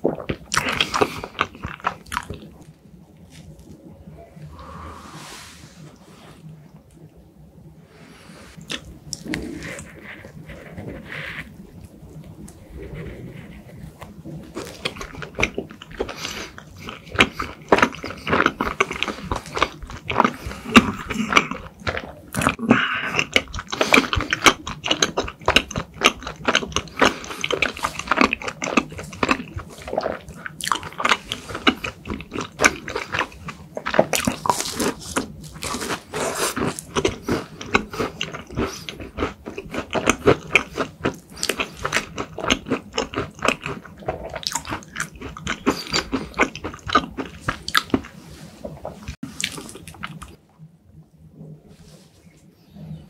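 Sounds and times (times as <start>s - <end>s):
person chewing: 0.0s - 3.8s, 8.5s - 50.4s.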